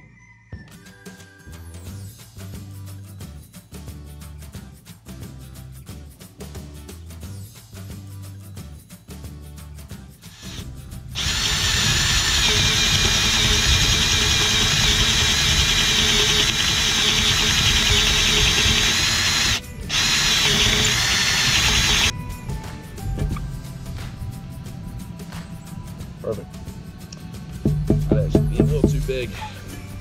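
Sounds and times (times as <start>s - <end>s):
cordless drill boring wood: 10.3s - 22.1s.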